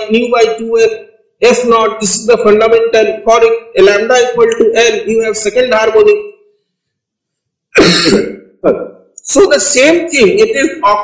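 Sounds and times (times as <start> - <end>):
man coughing: 7.7 - 8.9.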